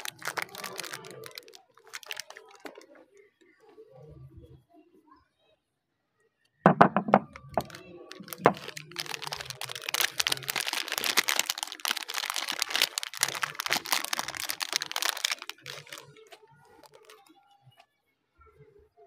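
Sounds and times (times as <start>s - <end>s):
wrapper crinkling: 0.0s - 3.3s, 6.9s - 17.4s.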